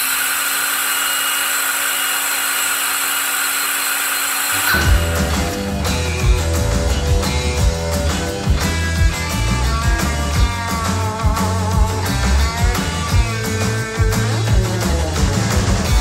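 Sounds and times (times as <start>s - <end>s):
power tool running: 0.0s - 16.0s
rock music with guitar and drums: 4.6s - 16.0s.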